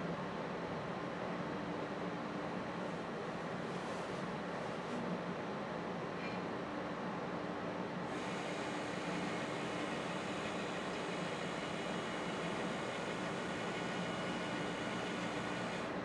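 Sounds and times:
stepper motor whine: 8.1s - 15.9s
low machine hum: 8.1s - 16.0s.

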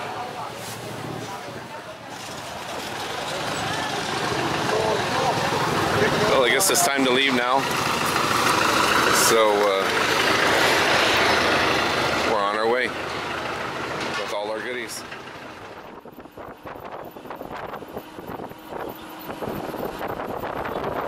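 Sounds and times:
people's voices: 0.0s - 13.0s
road noise: 0.0s - 21.0s
vehicle engine idling: 0.0s - 21.0s
wind on microphone: 15.7s - 21.0s.

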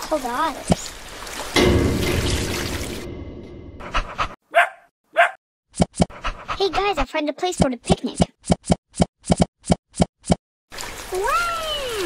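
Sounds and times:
dog barking: 4.5s - 5.4s.

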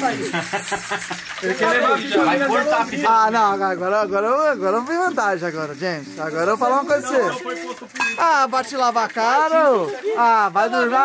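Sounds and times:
men talking: 0.0s - 11.0s.

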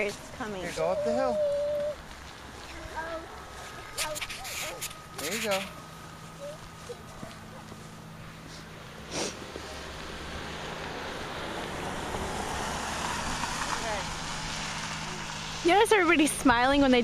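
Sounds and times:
car passing: 0.0s - 17.0s.

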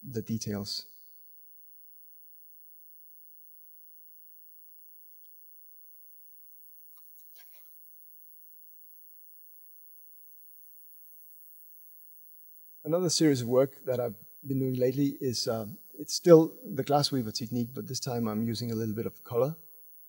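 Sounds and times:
light hiss: 1.5s - 20.0s.

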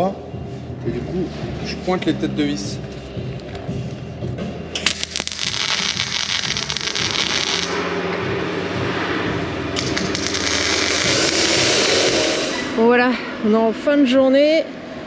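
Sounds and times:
welder arc crackling: 4.8s - 7.7s, 9.8s - 12.6s.

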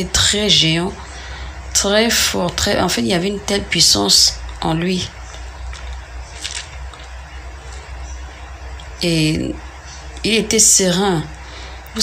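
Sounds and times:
low hum: 0.0s - 12.0s
soft breath: 1.0s - 1.6s, 11.4s - 11.9s.

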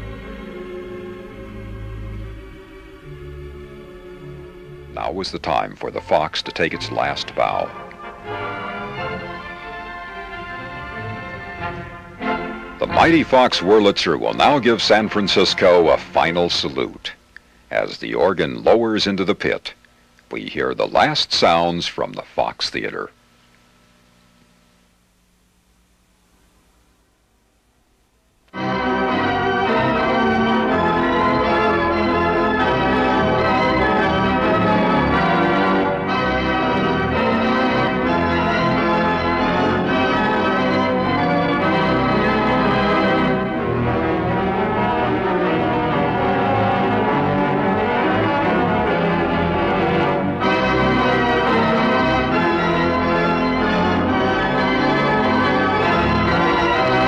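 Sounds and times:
pipe organ playing full chords: 0.0s - 19.6s, 28.5s - 57.0s.

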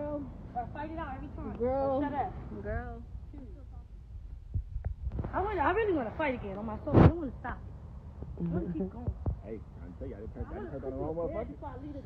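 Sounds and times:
low rumble: 0.0s - 10.4s
thuds on phone microphone: 6.9s - 7.2s, 9.0s - 9.5s.

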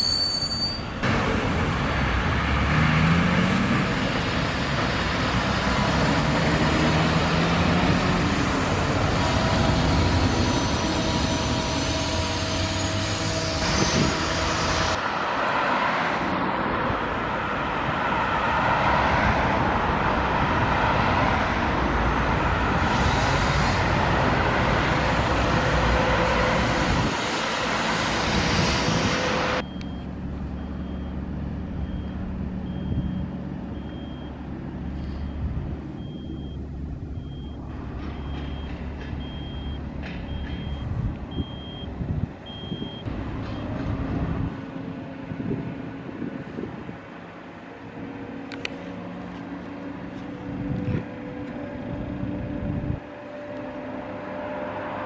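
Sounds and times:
reversing alarm beeping: 0.0s - 1.0s, 29.6s - 34.4s, 35.0s - 43.7s
crane engine and road noise: 0.0s - 55.0s
diesel engine rumble: 0.0s - 55.0s.

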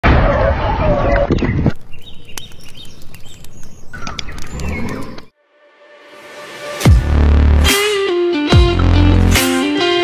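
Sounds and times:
outdoor background noise: 0.0s - 5.4s
birds chirping: 0.6s - 5.4s
sharp clicks: 1.7s - 5.3s.

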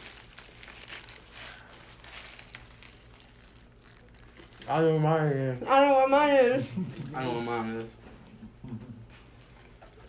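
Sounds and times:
paper wrappers crinkling: 0.0s - 5.6s
low room hum: 0.0s - 10.0s.

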